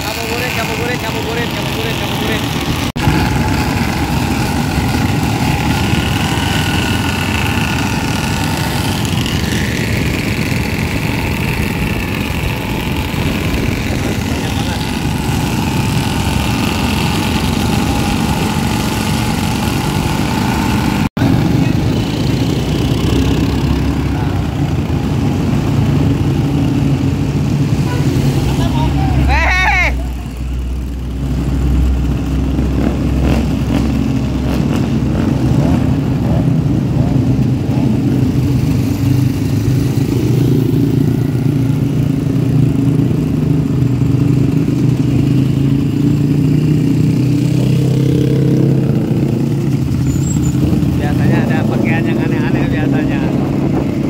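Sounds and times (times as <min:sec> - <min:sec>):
motorcycle engines running: 0:00.0 - 0:54.0.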